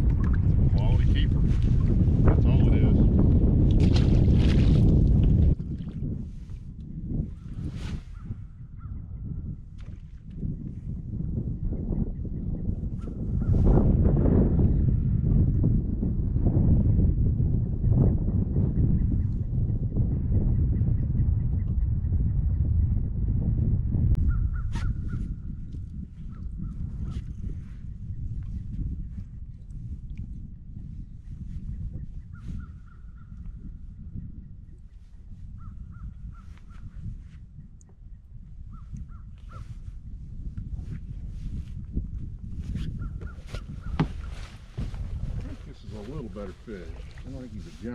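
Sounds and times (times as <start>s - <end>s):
low rumble: 0.0s - 9.8s, 13.5s - 31.3s.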